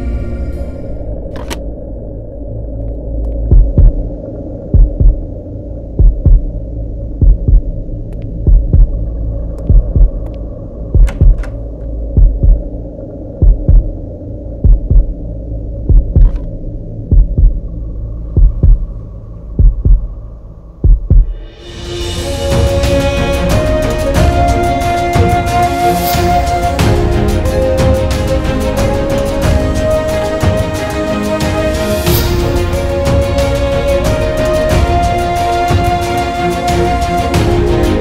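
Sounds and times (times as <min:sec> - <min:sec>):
low drone: 0:00.0 - 0:38.0
heartbeat thumps: 0:03.4 - 0:21.5.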